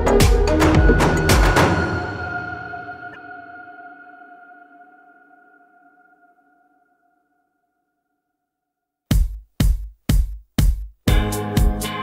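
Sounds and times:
drum hit: 0.2s - 1.9s.

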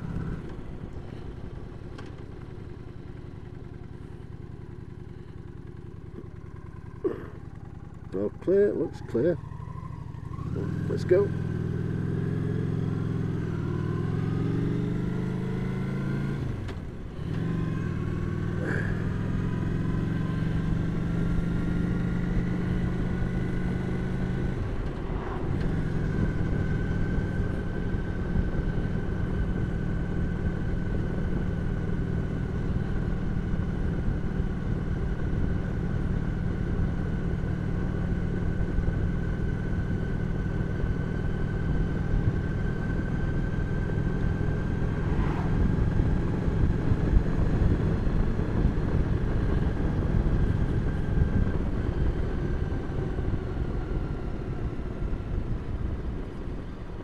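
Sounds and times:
motorcycle engine accelerating: 0.0s - 57.0s.

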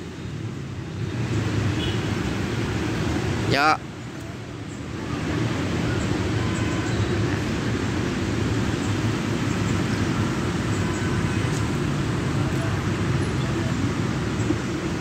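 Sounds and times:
traffic rumble: 0.0s - 15.0s.

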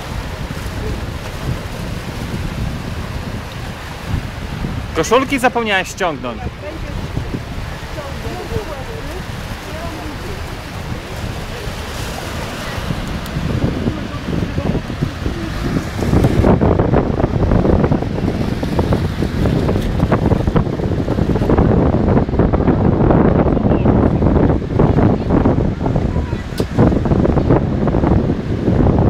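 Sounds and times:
small waves breaking: 0.0s - 22.4s
wind buffeting microphone: 0.0s - 29.0s.

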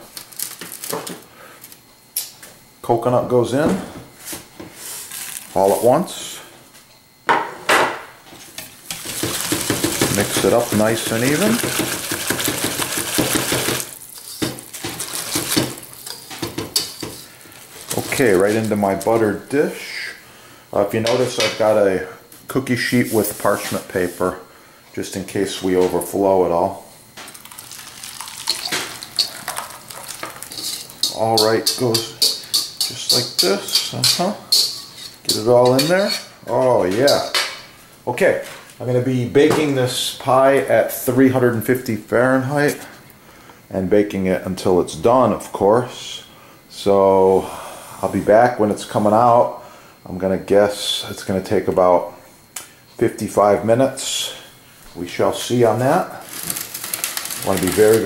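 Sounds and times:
whisk clinking against bowl: 8.9s - 17.2s, 28.4s - 36.3s
thick batter pouring and splatting: 9.0s - 14.1s, 27.3s - 31.0s.

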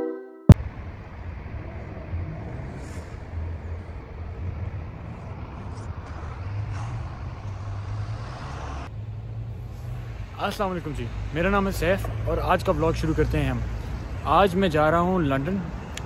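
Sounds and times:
street traffic: 0.5s - 16.0s
coach engine rumbling: 0.6s - 16.0s.

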